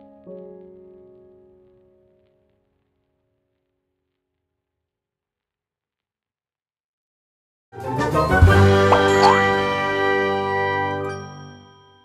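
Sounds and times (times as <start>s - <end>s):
chime-like jingle chord: 9.0s - 9.7s, 11.0s - 12.0s.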